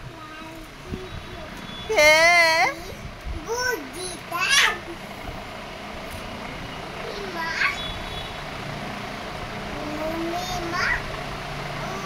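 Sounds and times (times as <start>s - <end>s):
mechanical rumble: 0.0s - 12.0s.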